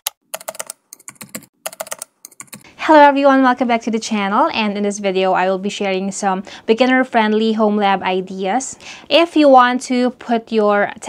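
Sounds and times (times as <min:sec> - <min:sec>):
computer keyboard typing: 0:00.0 - 0:02.7.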